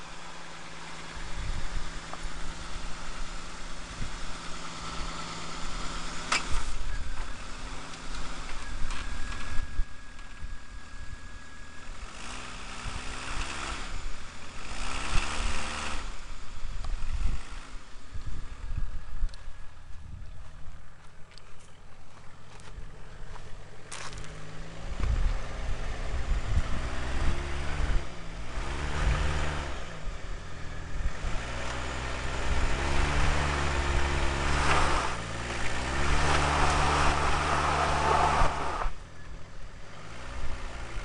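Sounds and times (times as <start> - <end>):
car engine idling and revving: 0.0 - 41.0
wind buffeting microphone: 24.8 - 31.5.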